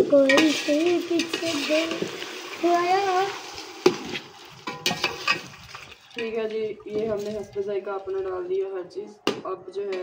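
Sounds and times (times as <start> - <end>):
chicken sizzling in a pot: 0.0 - 5.7.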